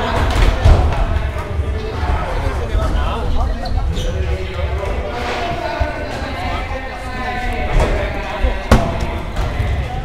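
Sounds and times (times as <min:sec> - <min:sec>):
several voices talking: 0:00.0 - 0:10.0.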